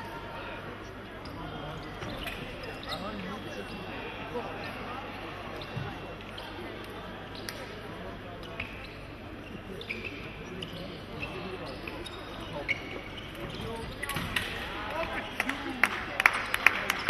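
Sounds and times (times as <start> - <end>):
murmur of voices in hall: 0.0 - 17.0
shoe squeaks: 1.8 - 3.3, 8.5 - 14.2.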